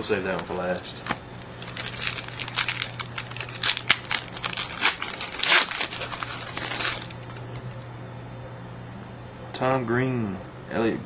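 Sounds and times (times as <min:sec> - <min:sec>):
wrapper tearing and crinkling: 0:01.4 - 0:07.5.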